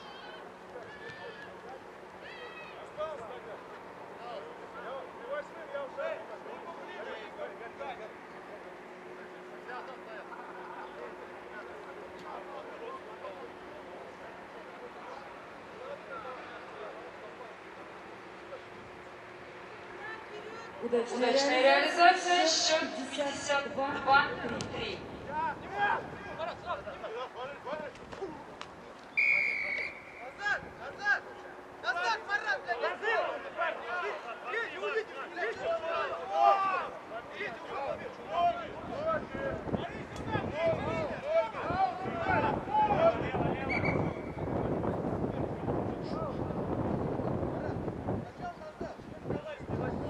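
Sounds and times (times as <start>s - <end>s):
distant shouts: 0.0s - 44.8s
wind rumbling on microphone: 23.8s - 27.0s, 38.6s - 50.0s.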